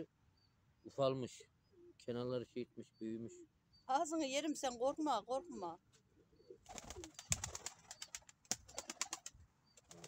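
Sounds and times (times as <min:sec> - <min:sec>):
pigeon wings flapping: 0:06.7 - 0:10.0.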